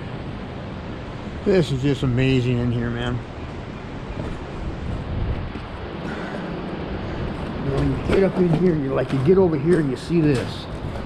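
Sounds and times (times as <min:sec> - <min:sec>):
ocean surf: 0:00.0 - 0:11.0
wind on microphone: 0:02.1 - 0:11.0.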